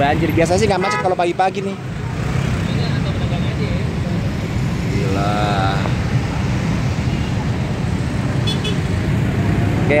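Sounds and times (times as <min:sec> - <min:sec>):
traffic rumble: 0:00.0 - 0:10.0.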